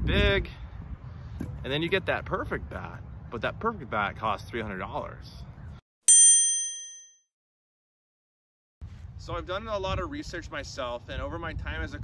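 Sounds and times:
bright bell ding: 0:06.1 - 0:07.2.

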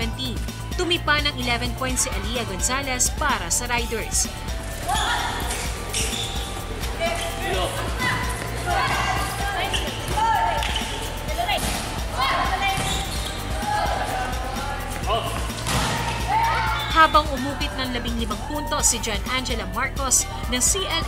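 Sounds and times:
players calling out: 0:01.4 - 0:19.1
shoe squeaks: 0:04.6 - 0:13.7
ball hits: 0:15.3 - 0:16.2.

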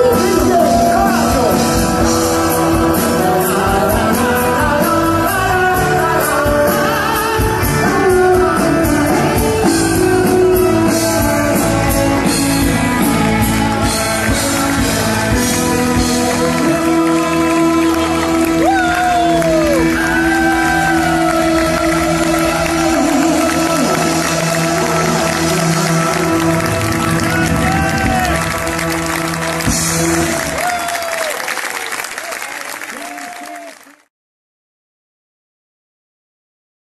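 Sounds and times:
rock band holding a chord: 0:00.0 - 0:31.0
audience whooping and shouting: 0:16.7 - 0:34.0.

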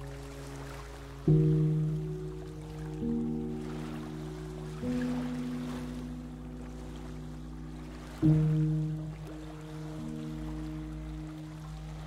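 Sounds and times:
sustained piano chord: 0:00.0 - 0:12.0
water sounds: 0:00.0 - 0:12.0.

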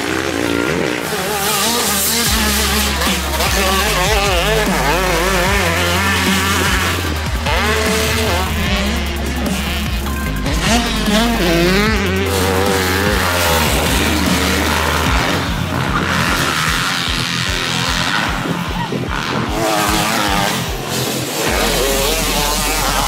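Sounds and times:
background music with bass line: 0:00.0 - 0:23.0
dirt bike engines revving: 0:00.0 - 0:23.0.

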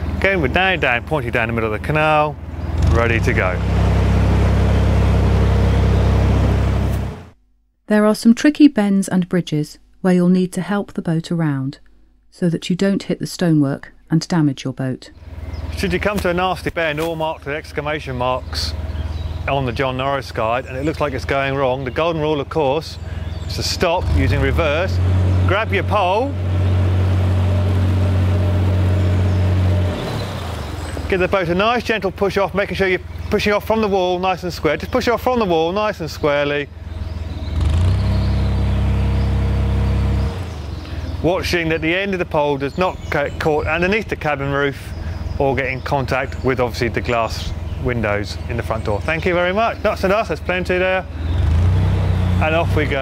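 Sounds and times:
propeller churning water: 0:00.0 - 0:07.3, 0:15.2 - 0:53.0
diesel boat engine running: 0:00.0 - 0:07.4, 0:15.2 - 0:53.0.

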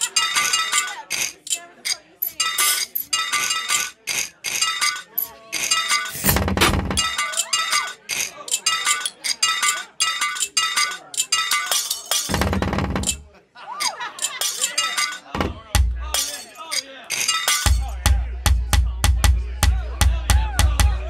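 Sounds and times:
chiming synth pattern: 0:08.6 - 0:11.8.

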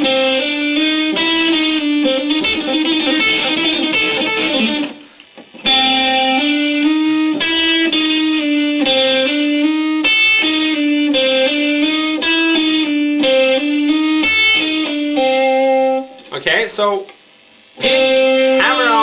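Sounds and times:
electric guitar lick: 0:00.0 - 0:16.3, 0:17.8 - 0:19.0.

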